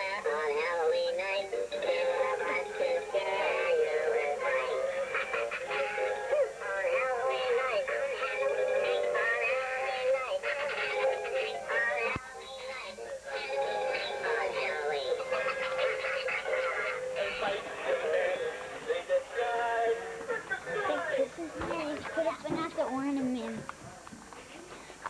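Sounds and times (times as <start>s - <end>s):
wavering singing voice: 0.0s - 21.7s
music accompaniment: 0.0s - 22.6s.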